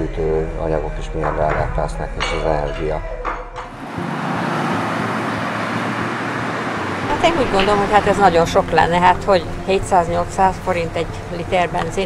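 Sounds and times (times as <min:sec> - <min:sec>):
road traffic rushing: 0:02.2 - 0:12.0.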